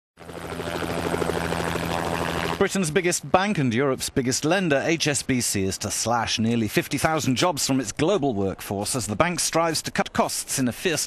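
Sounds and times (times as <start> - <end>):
pulsing mechanical engine drone: 0.2 - 2.6.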